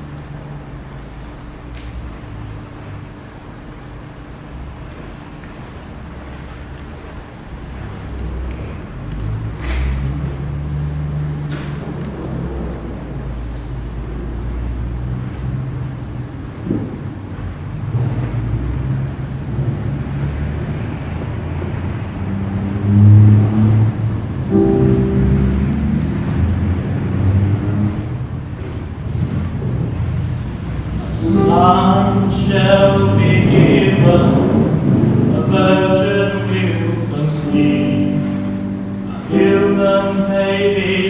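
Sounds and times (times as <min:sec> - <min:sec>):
digital keyboard playing low chords: 0:23.3 - 0:29.6, 0:30.5 - 0:41.0.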